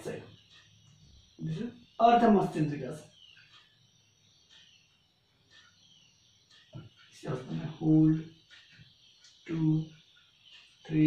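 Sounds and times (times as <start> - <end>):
faint high bird chirps: 0.0 - 11.0.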